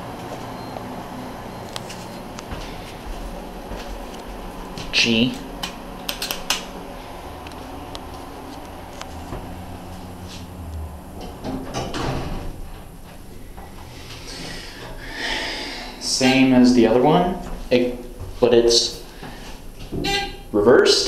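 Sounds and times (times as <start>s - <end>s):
low steady hum: 0.0s - 21.0s
elevator doors sliding shut: 8.7s - 15.0s.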